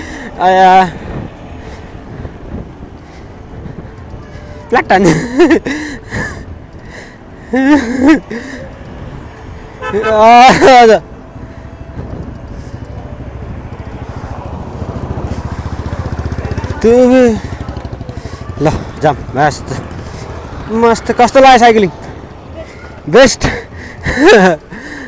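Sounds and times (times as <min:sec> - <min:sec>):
motorcycle engine running: 0:11.7 - 0:21.3
voices shouting: 0:12.8 - 0:23.8.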